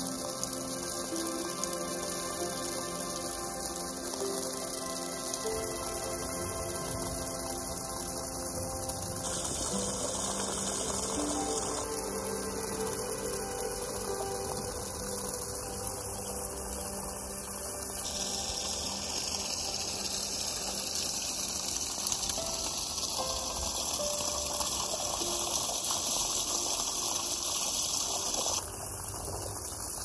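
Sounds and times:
water gushing from pipe: 0.0s - 30.0s
water splashing on wet ground: 0.0s - 30.0s.

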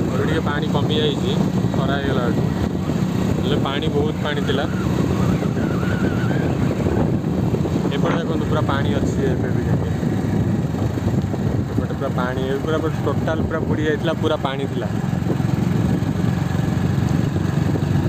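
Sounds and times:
wind on microphone: 0.0s - 18.0s.

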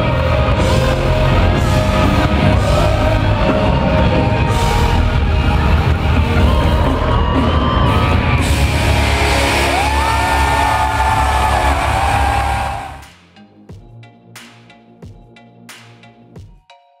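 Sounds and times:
live band music: 0.0s - 13.2s
crowd whooping and yelling: 2.6s - 13.0s.

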